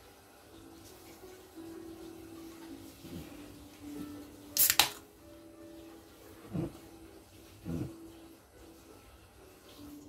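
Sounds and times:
can pull tab snapping open: 4.6s - 5.0s.

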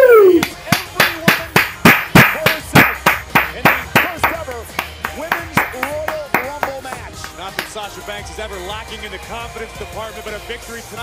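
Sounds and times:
person clapping hands: 0.3s - 7.8s.

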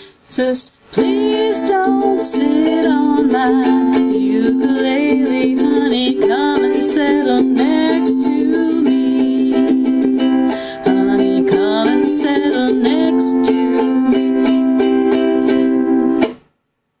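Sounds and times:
ukulele strumming: 0.4s - 16.5s.

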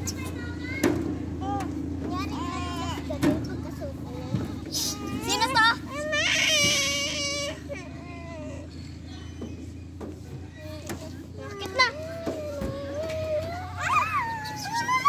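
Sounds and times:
children squealing and calling out: 0.0s - 15.0s
steady low hum: 0.0s - 15.0s.

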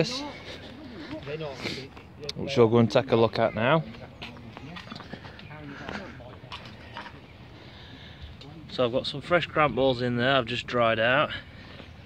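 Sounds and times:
people talking in background: 0.0s - 12.0s.

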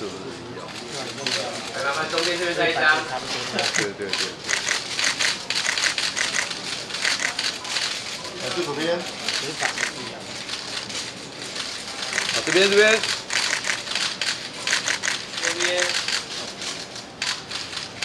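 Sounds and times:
camera shutters clicking rapidly: 0.7s - 18.0s.

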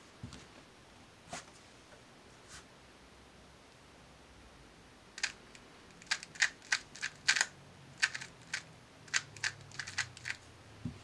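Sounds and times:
plastic cube layers clacking: 5.2s - 10.4s.

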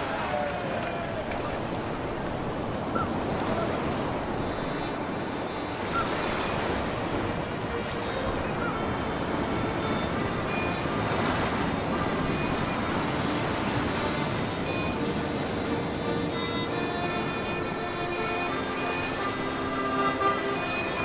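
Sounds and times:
ocean waves washing: 0.0s - 21.0s.

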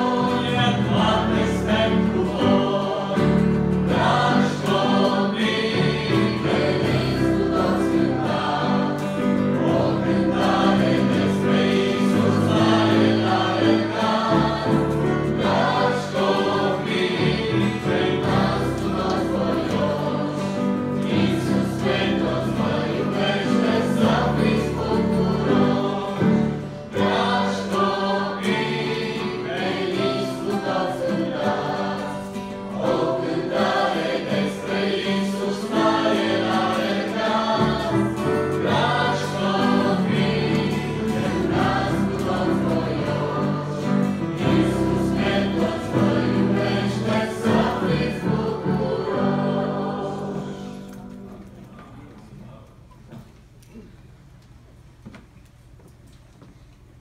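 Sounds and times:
choir singing a hymn: 0.0s - 52.6s.

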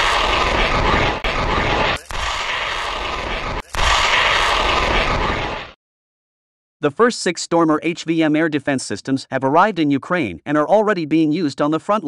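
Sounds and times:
missile launch rushing blast: 0.0s - 5.8s.

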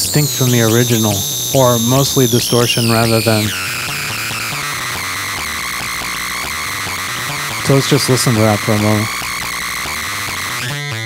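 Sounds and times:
distorted synthesizer tone: 0.0s - 11.0s.

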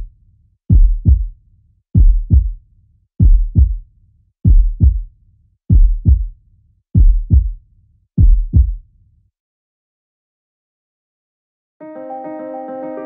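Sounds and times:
heartbeat thumps: 0.7s - 1.3s, 2.0s - 2.6s, 3.2s - 3.8s, 4.4s - 5.1s, 5.7s - 6.3s, 7.0s - 7.6s, 8.2s - 8.8s.

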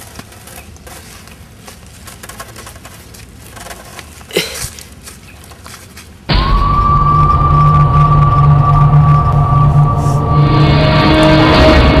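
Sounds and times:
tense film score: 6.3s - 12.0s.

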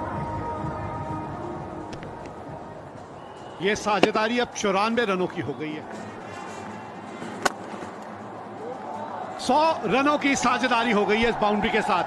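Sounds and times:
stadium background noise: 0.0s - 12.0s
cricket bat striking ball: 4.0s - 4.4s, 7.4s - 7.7s.

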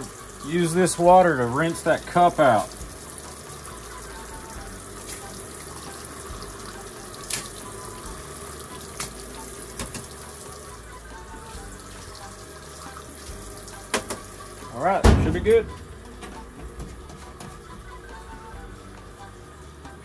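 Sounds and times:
water spraying into washing machine: 0.0s - 20.0s.

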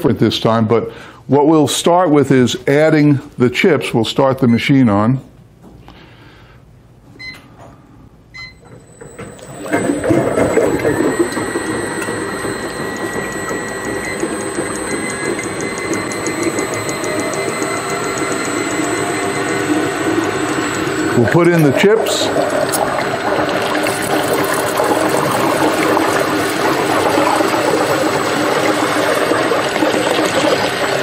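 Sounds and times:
ice cream freezer motor running: 8.4s - 31.0s.

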